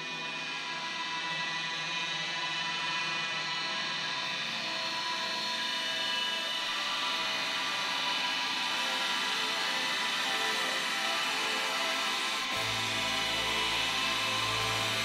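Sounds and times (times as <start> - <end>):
live band sustained drone: 4.4 - 15.0.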